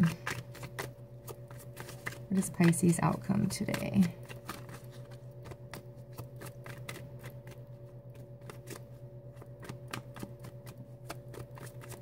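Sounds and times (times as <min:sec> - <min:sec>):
cards being shuffled: 0:00.0 - 0:12.0
faint low hum: 0:00.0 - 0:12.0.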